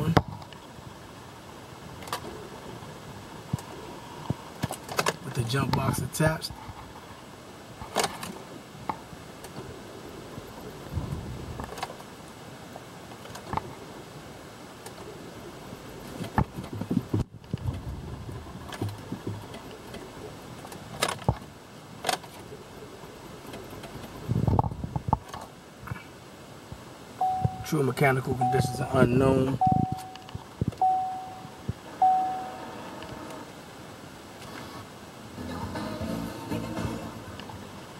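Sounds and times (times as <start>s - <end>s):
ignition clicks: 28.4s - 33.1s.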